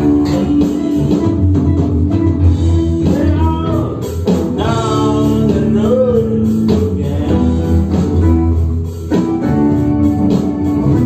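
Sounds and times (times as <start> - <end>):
drums: 0.0 - 11.0
electric bass: 0.0 - 11.0
electric guitar: 0.0 - 11.0.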